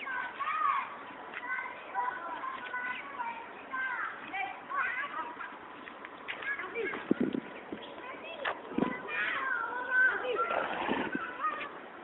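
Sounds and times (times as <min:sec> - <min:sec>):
people talking: 0:00.0 - 0:05.7, 0:06.3 - 0:11.8.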